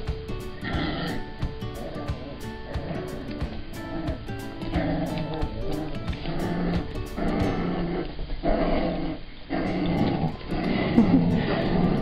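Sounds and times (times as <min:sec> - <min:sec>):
music playing: 0:00.0 - 0:08.0, 0:09.7 - 0:12.0
dogs growling in play: 0:00.6 - 0:12.0.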